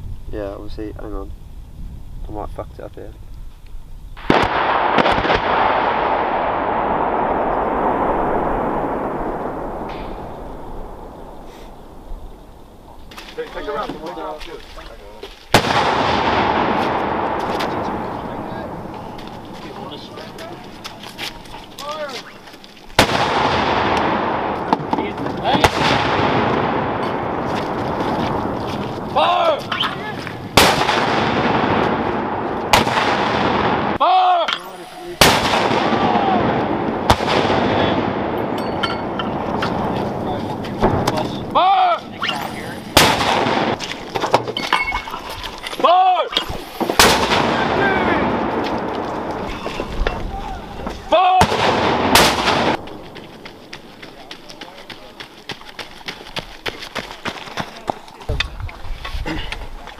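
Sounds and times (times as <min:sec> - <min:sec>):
mortars firing with rolling echo: 0:04.2 - 0:55.2.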